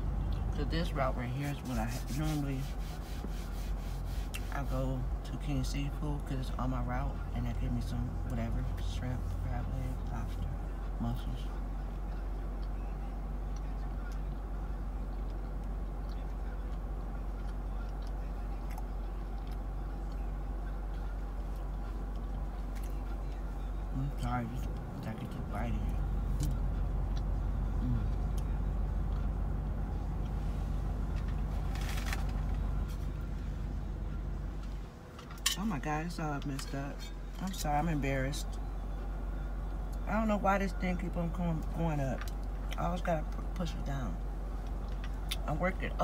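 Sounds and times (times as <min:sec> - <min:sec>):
low hum in car cabin: 0:00.0 - 0:46.0.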